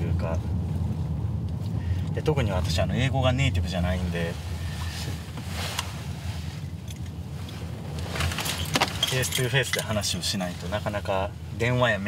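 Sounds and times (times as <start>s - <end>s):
car driving rumble from inside: 0.0s - 12.0s
man talking: 2.2s - 4.4s, 9.0s - 12.0s
light metallic jingling: 8.1s - 10.3s.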